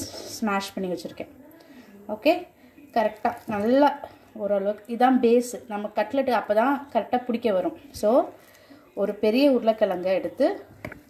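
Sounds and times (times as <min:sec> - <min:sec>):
woman speaking: 0:00.0 - 0:10.8.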